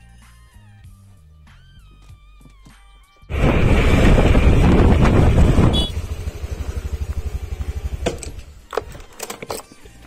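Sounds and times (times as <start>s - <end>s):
scooter engine running: 3.3s - 8.6s
road and wind noise: 3.3s - 9.7s
scooter engine idling: 5.3s - 8.6s.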